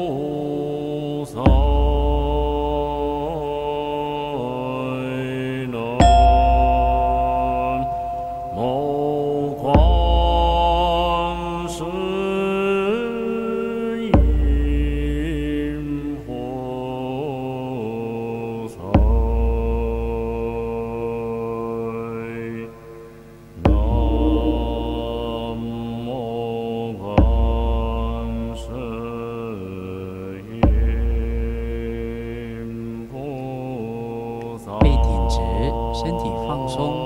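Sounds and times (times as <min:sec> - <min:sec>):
chanting voices: 0:00.0 - 0:22.9, 0:23.5 - 0:37.0
deep drum beat: 0:07.8 - 0:11.1, 0:23.6 - 0:25.7, 0:34.8 - 0:35.8.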